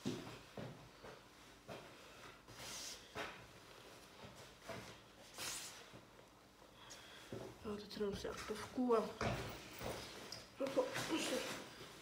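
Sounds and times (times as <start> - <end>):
person moving and handling things: 0.0 - 12.0.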